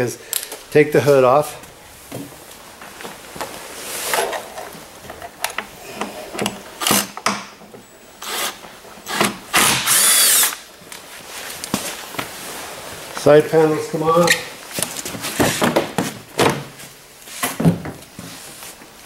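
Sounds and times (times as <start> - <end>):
cordless drill whining: 9.1 - 10.6.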